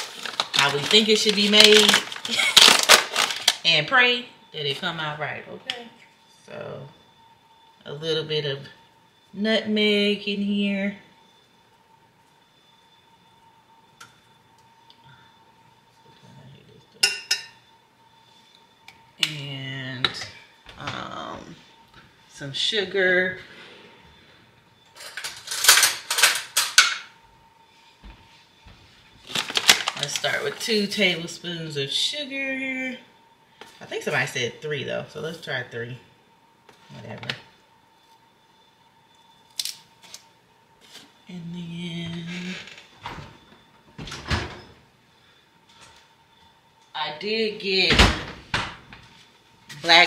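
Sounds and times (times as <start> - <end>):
bag of sugar rustling: 0.0 - 3.8, 29.2 - 31.0.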